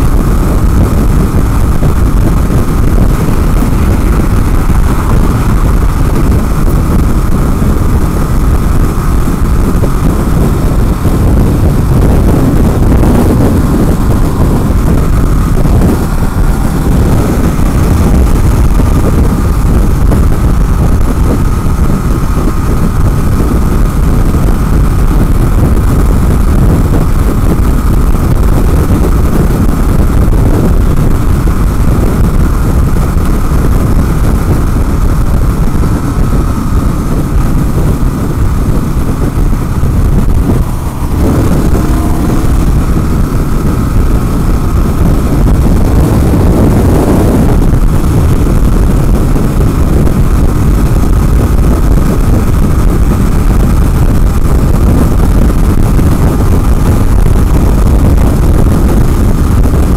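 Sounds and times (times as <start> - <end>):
motorcycle engine running: 0.0 - 59.9
wind buffeting microphone: 0.0 - 59.9.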